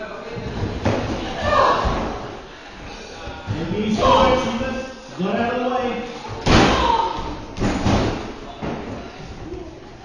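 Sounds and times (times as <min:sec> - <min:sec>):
bodies hitting wrestling ring: 0:06.4 - 0:09.0.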